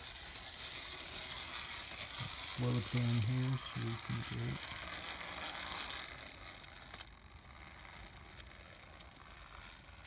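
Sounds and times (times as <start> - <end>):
model train running: 0.0 - 10.0.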